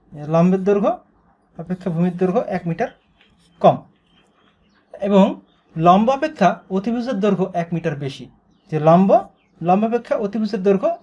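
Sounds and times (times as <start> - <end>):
marker scratching on whiteboard: 1.8 - 4.9.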